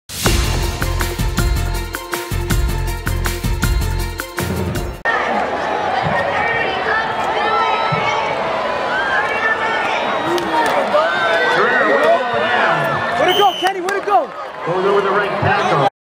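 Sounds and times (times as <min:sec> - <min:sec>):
stadium crowd cheering: 0:05.0 - 0:15.9.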